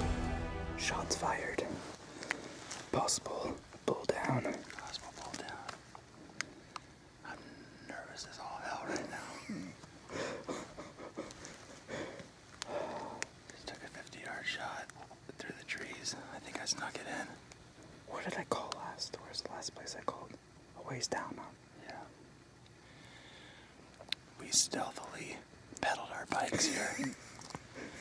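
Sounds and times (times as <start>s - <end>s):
man whispering: 0.8s - 1.9s, 2.9s - 5.8s, 7.2s - 9.8s, 13.4s - 17.4s, 18.0s - 22.2s, 24.4s - 27.2s.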